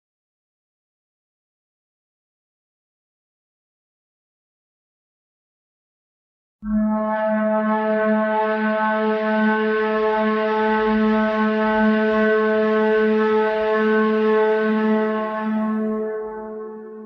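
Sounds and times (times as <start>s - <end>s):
long low horn-like tone: 6.6s - 17.0s.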